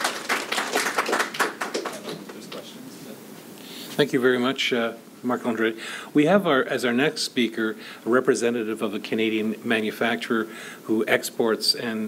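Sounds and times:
audience applauding: 0:00.0 - 0:02.5.

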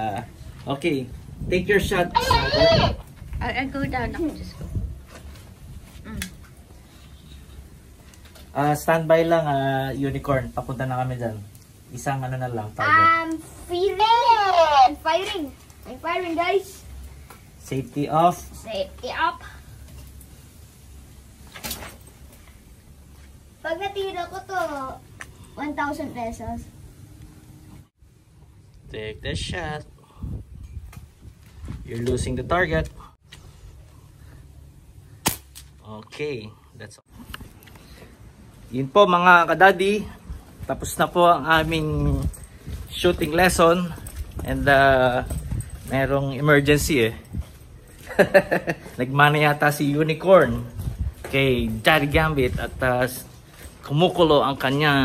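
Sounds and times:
wind rumbling on microphone: 0:00.0 - 0:06.5, 0:28.8 - 0:33.2, 0:40.1 - 0:47.9, 0:50.5 - 0:53.1.

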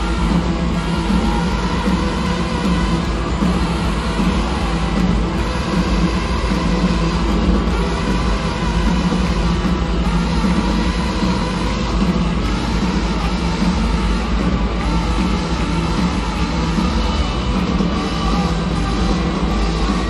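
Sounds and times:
live rock band jamming: 0:00.0 - 0:20.0.

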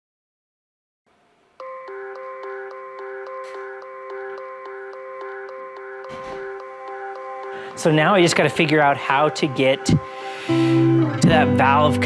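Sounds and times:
light ticking percussion: 0:01.6 - 0:10.6
bell-like melody: 0:01.6 - 0:12.0.

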